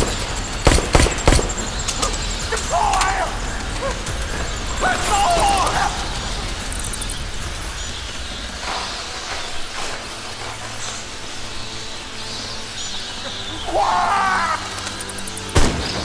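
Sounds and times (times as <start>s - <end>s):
sharp hits: 0.0s - 11.3s
dense rushing noise: 0.0s - 15.9s
low steady drone: 0.0s - 16.0s
tense film score: 0.0s - 16.0s.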